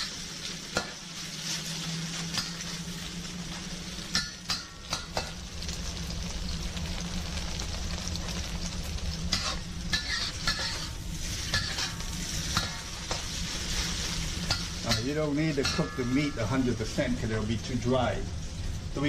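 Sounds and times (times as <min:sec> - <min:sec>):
spatula scraping wok: 0:00.0 - 0:05.3, 0:09.1 - 0:17.8
beef sizzling in hot oil: 0:00.0 - 0:19.0.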